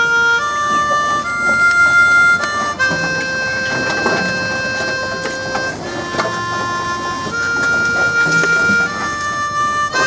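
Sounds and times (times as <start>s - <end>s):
harmonica long held notes: 0.0s - 10.0s.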